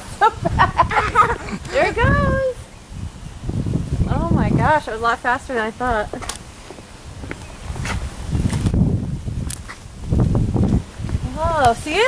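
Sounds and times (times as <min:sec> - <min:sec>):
low rumble of microphone noise: 0:00.0 - 0:12.0.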